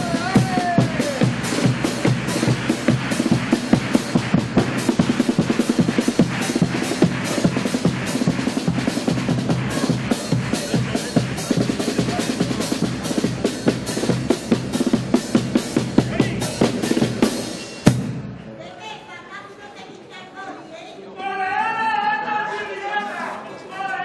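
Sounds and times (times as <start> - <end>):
bass drum: 0.0 - 18.5
snare drum: 0.0 - 18.5.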